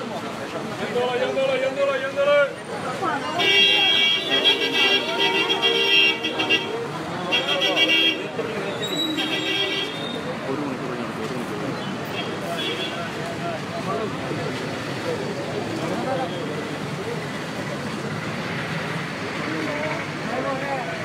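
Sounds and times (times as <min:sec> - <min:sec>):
street crowd voices: 0:00.0 - 0:21.0
vehicle horns honking: 0:03.3 - 0:10.3, 0:12.0 - 0:13.1.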